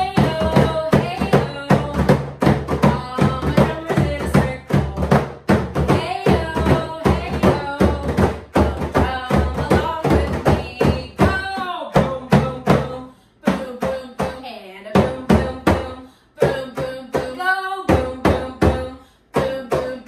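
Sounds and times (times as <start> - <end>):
hand drums beating: 0.0 - 20.0.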